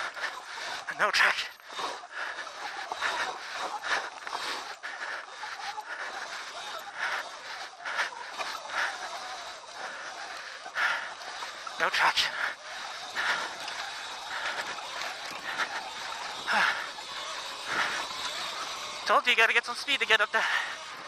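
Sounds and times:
rider breathing hard: 0.0s - 21.0s
wind and trail noise: 0.0s - 21.0s.

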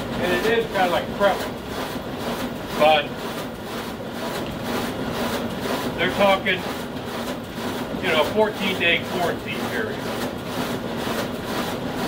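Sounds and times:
printing machine running: 0.0s - 12.0s.

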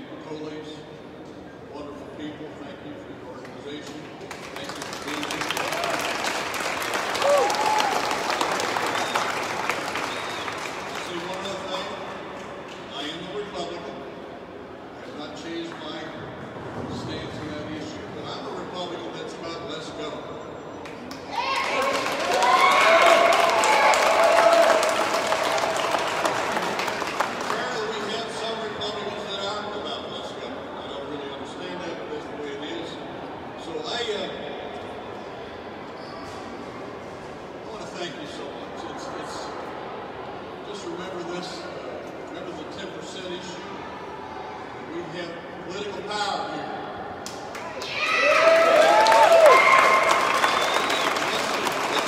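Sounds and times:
audience applauding: 4.3s - 11.9s, 21.1s - 28.3s, 47.5s - 52.0s.

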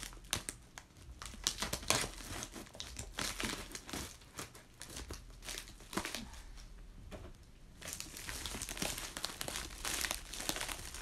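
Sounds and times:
plastic bag crinkling: 0.0s - 6.6s, 7.8s - 11.0s
scissors cutting plastic: 1.2s - 6.2s.

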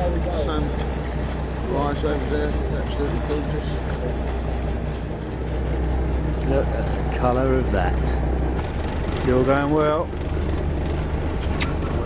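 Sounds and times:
boat engine humming: 0.0s - 12.0s.

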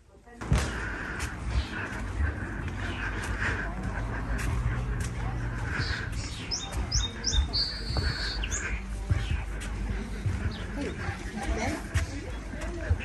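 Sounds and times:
footsteps on wooden boardwalk: 0.4s - 13.0s
small bird chirping: 5.8s - 8.8s.

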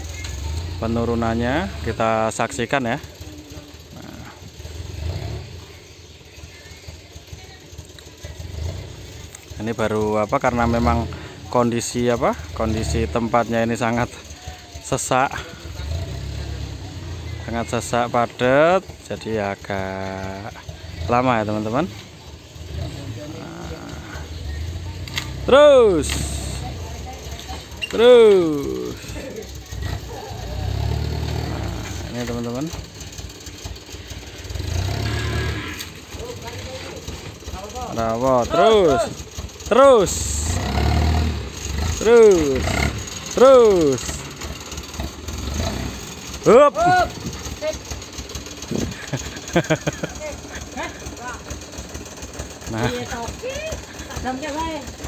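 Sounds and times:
diesel truck engine rumbling: 0.0s - 55.0s.

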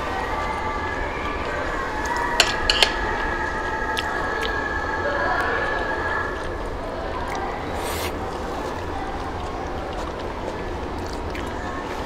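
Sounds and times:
restaurant room noise: 0.0s - 12.0s
chopsticks clinking on plates: 2.4s - 3.0s.

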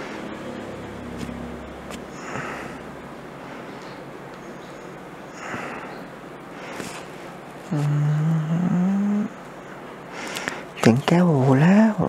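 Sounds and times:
person humming: 7.7s - 9.4s.

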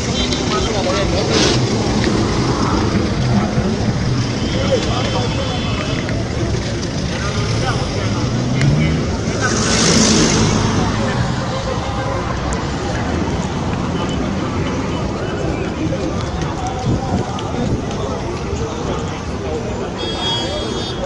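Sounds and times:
people talking: 0.0s - 21.0s
vehicles passing: 0.0s - 21.0s.

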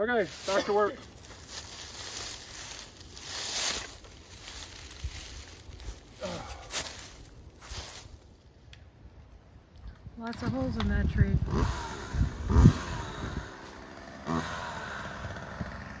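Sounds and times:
footsteps crunching dry leaves: 0.1s - 8.4s.

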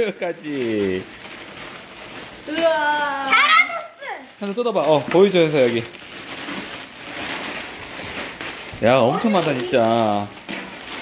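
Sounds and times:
plastic wrapping crinkling: 0.0s - 11.0s
child calling out: 2.5s - 4.3s.

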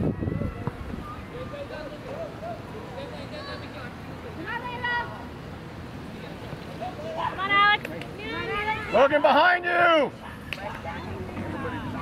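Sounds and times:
wind rumble on microphone: 0.0s - 1.4s
distant voices calling: 0.0s - 12.0s.

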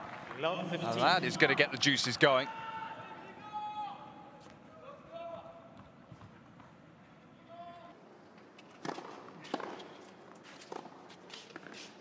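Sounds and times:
arena ambience: 0.0s - 3.1s.

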